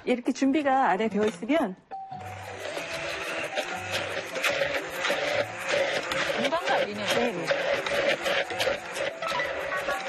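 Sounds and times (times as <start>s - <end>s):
background music: 0.0s - 10.0s
immersion blender running: 2.1s - 10.0s.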